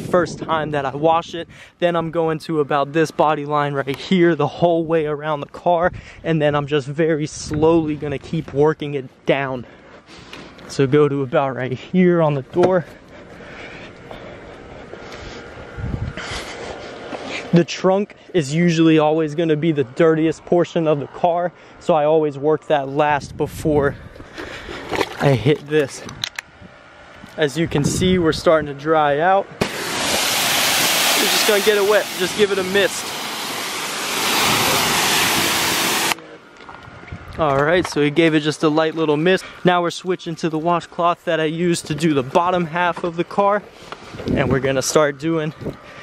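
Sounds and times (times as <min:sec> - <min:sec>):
wind on microphone: 0:00.0 - 0:02.1, 0:15.6 - 0:16.4, 0:23.2 - 0:24.3, 0:26.0 - 0:28.8, 0:34.1 - 0:36.1, 0:44.1 - 0:44.7
pressure washer spraying water: 0:29.6 - 0:36.2.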